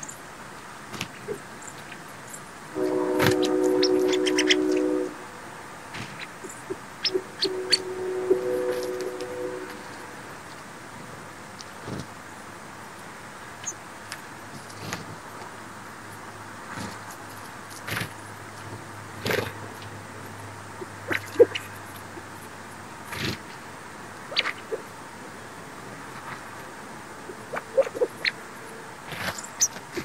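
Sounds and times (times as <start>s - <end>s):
faint low hum: 0.0s - 13.1s
horn two-note chord: 2.7s - 5.4s, 7.1s - 10.4s
sparrows chirping: 3.4s - 5.0s.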